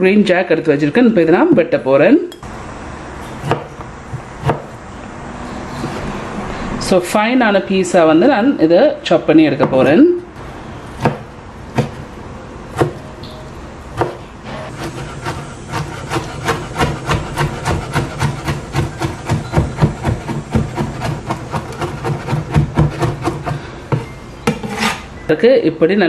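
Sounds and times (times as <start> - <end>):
knife chopping on wooden board: 3.4 - 4.7, 11.0 - 12.0, 12.8 - 13.0, 14.0 - 24.9.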